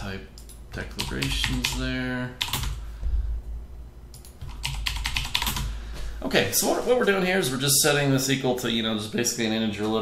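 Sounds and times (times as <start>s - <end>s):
computer keyboard typing: 0.4s - 2.8s, 4.1s - 5.8s.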